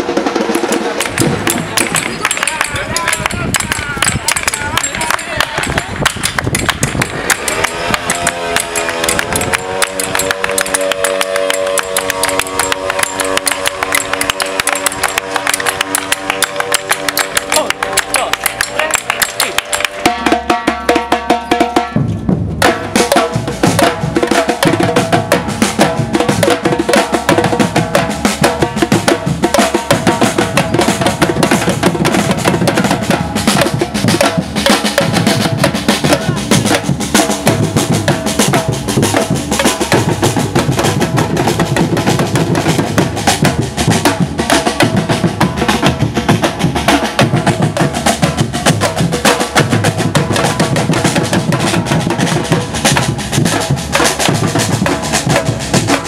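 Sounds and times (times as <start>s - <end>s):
drum group playing samba rhythm: 0.0s - 56.0s
fast snare drum rolls: 0.0s - 56.0s
deep bass drums: 0.9s - 20.5s, 21.7s - 56.0s.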